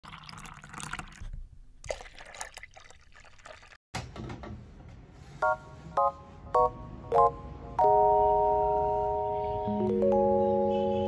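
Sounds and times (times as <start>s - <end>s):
liquid pouring and dripping: 0.0s - 3.8s
liquid splashes: 0.0s - 3.8s.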